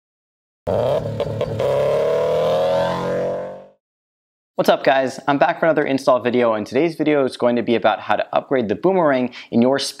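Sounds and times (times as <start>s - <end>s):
car engine revving: 0.7s - 3.6s.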